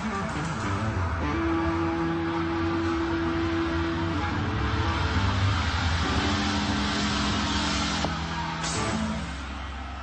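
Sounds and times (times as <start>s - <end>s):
electric guitar sustained notes: 0.0s - 9.4s.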